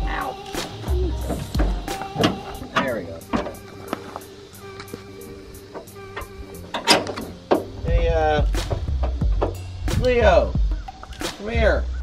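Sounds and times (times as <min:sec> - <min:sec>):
voice-like sounds: 0:00.0 - 0:01.4
background music with steady beat: 0:00.0 - 0:12.0.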